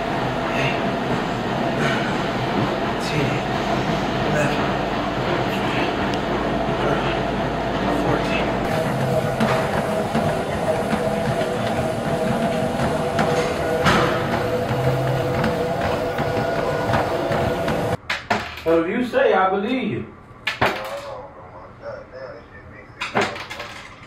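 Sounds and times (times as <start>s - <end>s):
indistinct voices: 0.0s - 18.0s
machine hum and rumble: 0.0s - 18.0s.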